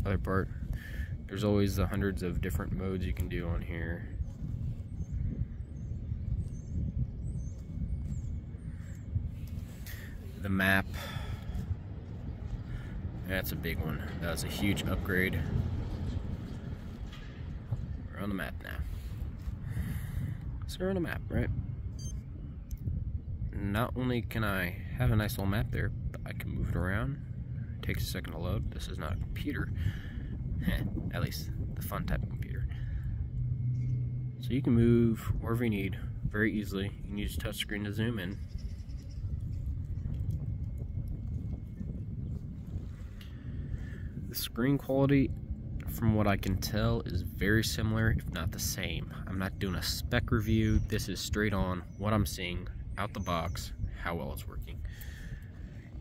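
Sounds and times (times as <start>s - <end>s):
wind rumble on microphone: 0.0s - 56.0s.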